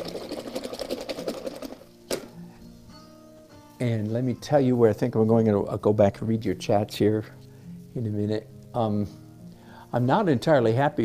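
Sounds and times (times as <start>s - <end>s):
paintbrush rattling in water jar: 0.0s - 1.9s.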